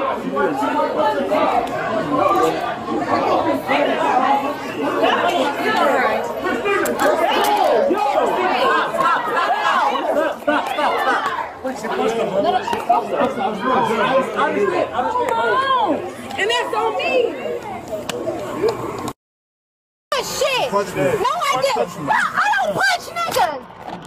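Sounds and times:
people talking over one another: 0.0 - 19.2, 20.1 - 24.0.

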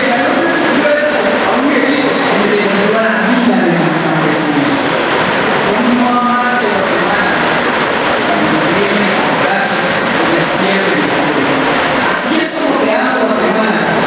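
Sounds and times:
man reciting into a microphone: 0.0 - 5.0, 5.6 - 7.6, 8.2 - 14.0
loud steady noise: 0.0 - 14.0.

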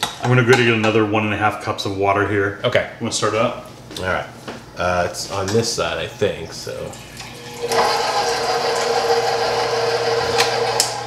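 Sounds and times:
stand mixer motor whine: 7.3 - 11.0.

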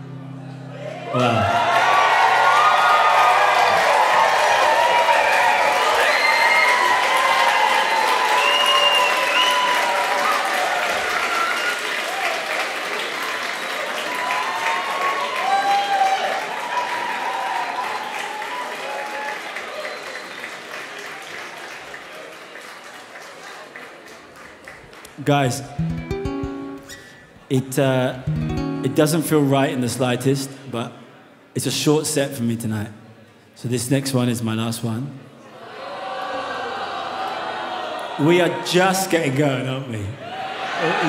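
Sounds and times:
audience applause and cheers: 0.4 - 27.2, 35.6 - 39.1, 40.0 - 41.0
guitar chord ringing: 25.7 - 27.1, 28.2 - 29.5.

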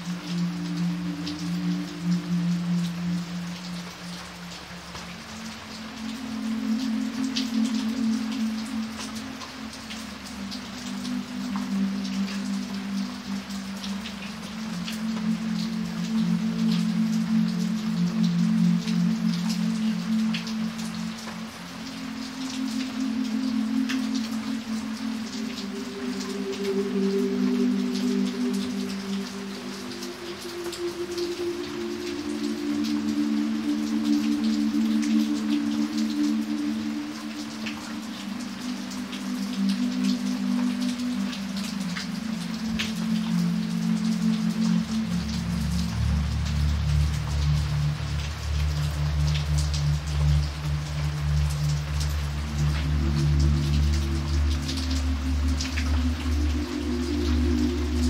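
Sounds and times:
rain on wet pavement: 0.0 - 58.0
raindrops splashing: 0.0 - 58.0
soft low music chords: 0.0 - 58.0.

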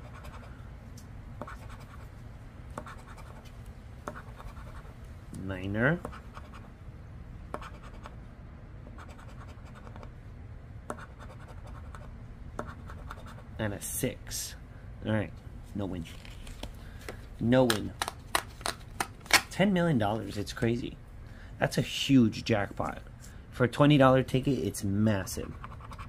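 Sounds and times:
coin scratching lottery ticket: 25.3 - 26.0.

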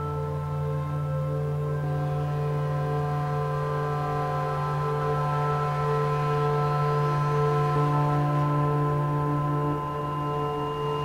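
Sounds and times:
synthesizer ambient pad chord: 0.0 - 11.0.

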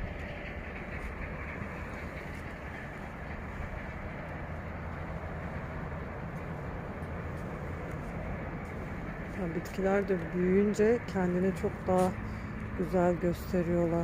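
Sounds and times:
background rumble and hiss: 0.0 - 14.0.

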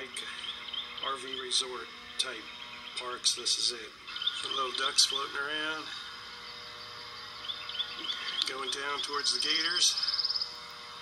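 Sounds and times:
faint bird chirps: 0.0 - 3.2, 4.0 - 10.7
faint mechanical hum: 0.0 - 11.0.

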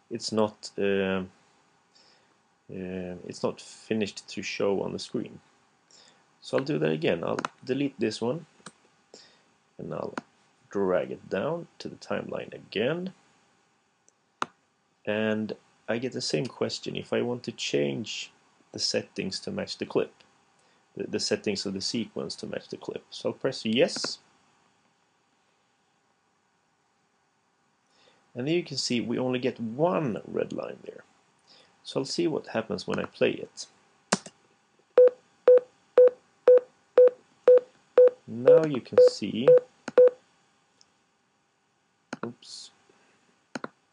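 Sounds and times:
short warning beeps: 35.0 - 40.2.

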